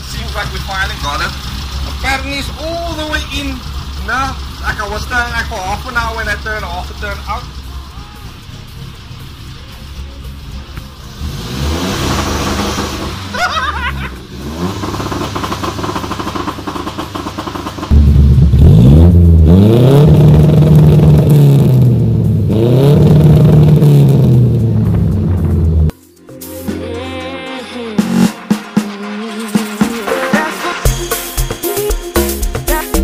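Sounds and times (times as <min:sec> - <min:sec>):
car engine revving: 0:00.0 - 0:25.9.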